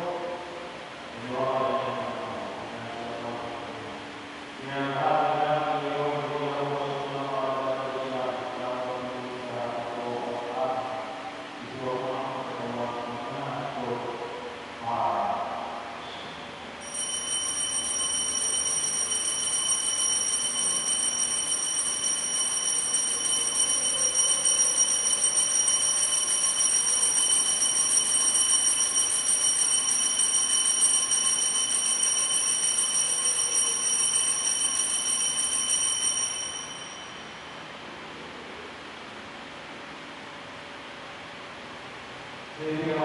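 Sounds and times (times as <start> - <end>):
altar bells ringing rapidly: 16.8 - 37.4.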